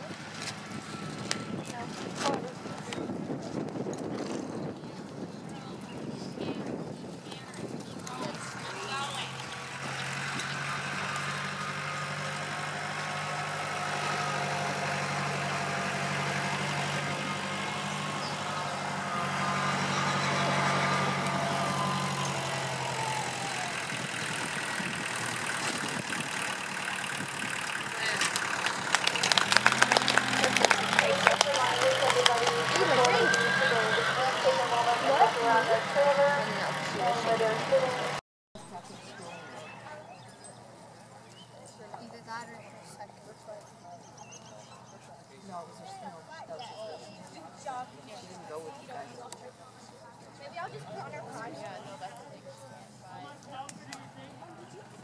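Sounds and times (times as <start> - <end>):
distant voices: 0.0 - 55.0
vehicle engine idling: 7.3 - 44.2.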